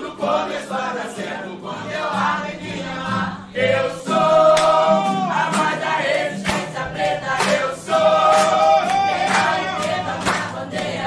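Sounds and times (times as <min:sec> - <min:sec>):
acoustic guitar: 0:00.0 - 0:11.0
young voices singing in chorus: 0:00.0 - 0:11.0
hand claps: 0:04.4 - 0:11.0.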